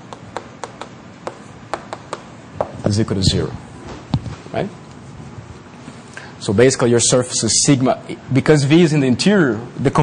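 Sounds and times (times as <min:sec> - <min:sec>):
chalk tapping on blackboard: 0:00.0 - 0:02.8.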